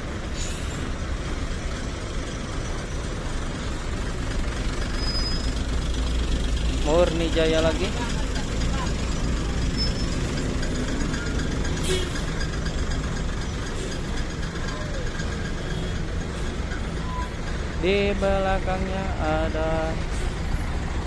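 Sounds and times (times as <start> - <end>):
bus diesel engine rumble: 0.0 - 21.0.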